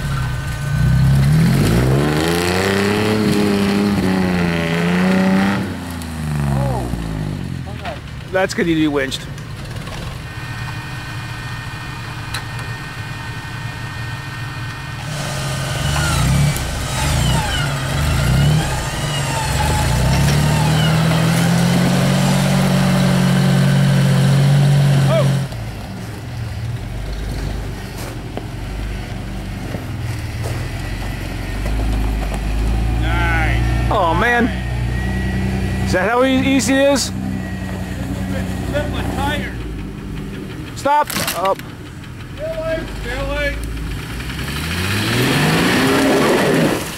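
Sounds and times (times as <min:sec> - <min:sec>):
jeep engine revving hard: 0:00.0 - 0:07.6, 0:15.0 - 0:25.6, 0:29.4 - 0:40.9, 0:43.0 - 0:46.9
low steady engine rumble: 0:00.0 - 0:46.9.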